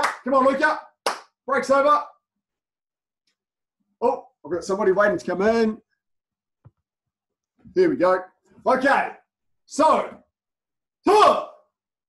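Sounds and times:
man speaking: 0:04.0 - 0:05.9, 0:07.6 - 0:10.2.

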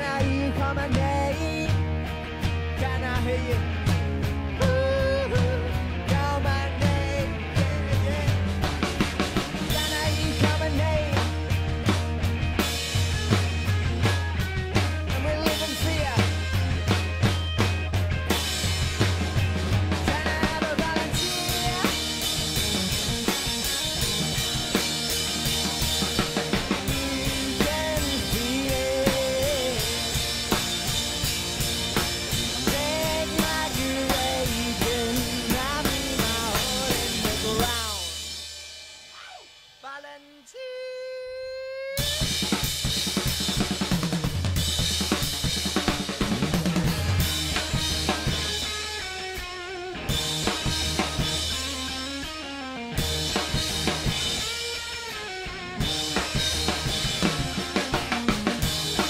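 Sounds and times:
electric guitar: 0:00.0 - 0:38.7, 0:41.0 - 0:59.0
drum kit groove: 0:00.0 - 0:40.2, 0:42.0 - 0:59.0.

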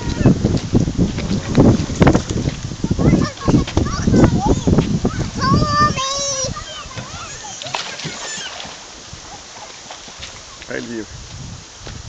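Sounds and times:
child calling out: 0:00.0 - 0:00.4, 0:02.9 - 0:08.6
faint child voices: 0:00.0 - 0:00.5, 0:02.8 - 0:09.8
feet splashing in shallow water: 0:00.0 - 0:12.0.

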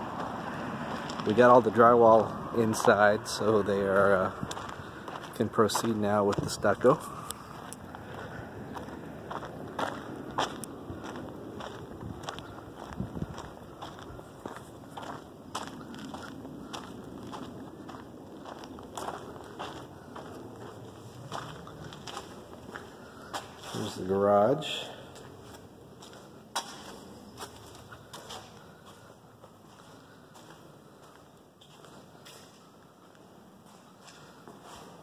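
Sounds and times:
low outdoor background noise: 0:00.0 - 0:35.0
footsteps on dirt: 0:00.1 - 0:35.0.

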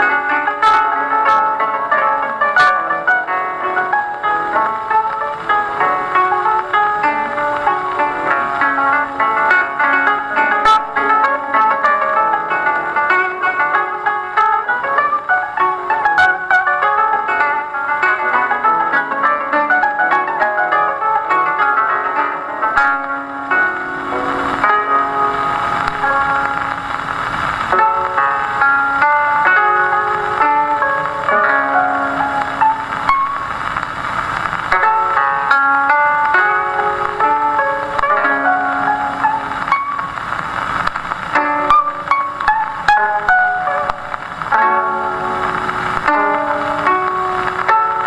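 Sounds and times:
koto plucking fast notes: 0:00.0 - 0:48.0
record surface hiss: 0:00.0 - 0:48.0.

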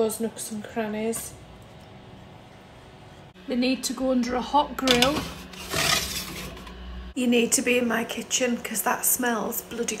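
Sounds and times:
metal tray scraping on runners: 0:04.9 - 0:06.7.

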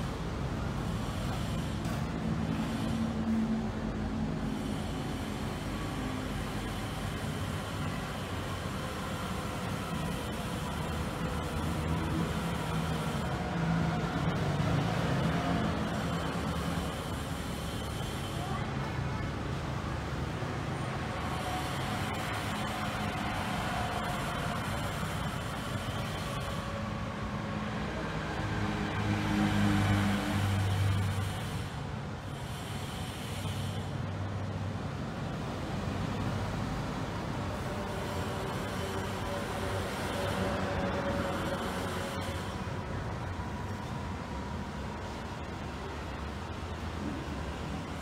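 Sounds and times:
vehicles passing: 0:00.0 - 0:48.0.

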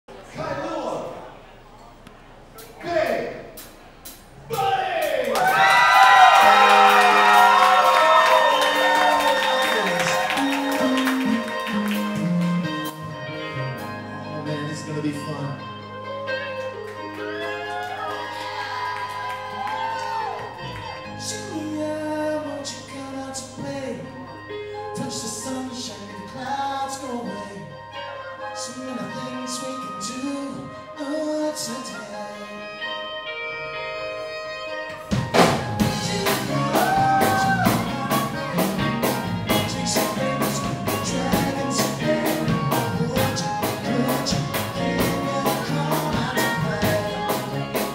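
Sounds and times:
live band music: 0:02.4 - 0:47.9
low bass notes: 0:09.8 - 0:17.4, 0:35.1 - 0:47.9.

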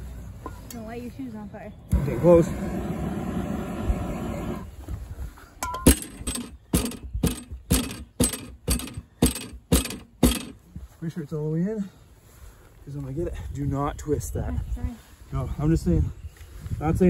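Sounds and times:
gas torch hissing: 0:01.9 - 0:04.7
pipe knocking onto fitting: 0:05.6 - 0:10.6.

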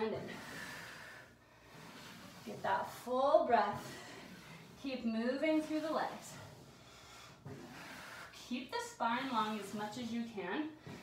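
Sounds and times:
woman breathing in deeply: 0:00.2 - 0:02.4, 0:06.6 - 0:08.4
woman speaking: 0:02.5 - 0:04.0, 0:04.8 - 0:06.4, 0:08.5 - 0:10.8.

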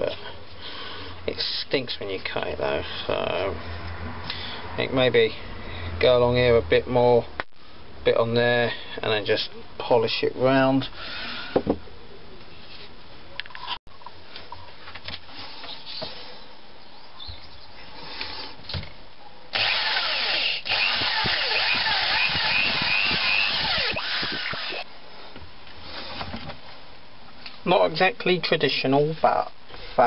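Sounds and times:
handheld power tool running: 0:19.6 - 0:24.8.

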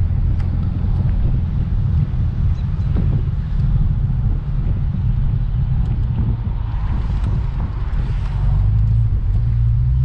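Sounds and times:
car engine cruising: 0:00.0 - 0:10.0
road and wind noise: 0:00.0 - 0:10.0.

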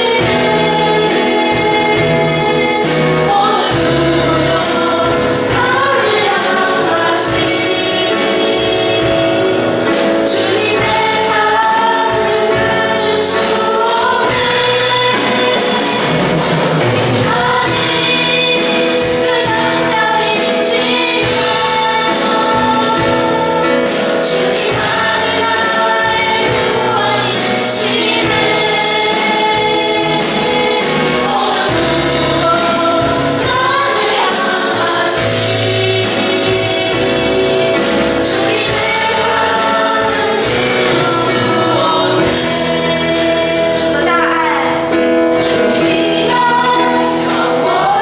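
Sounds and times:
group singing praise song: 0:00.0 - 0:48.0
instrumental accompaniment with drums: 0:00.0 - 0:48.0.

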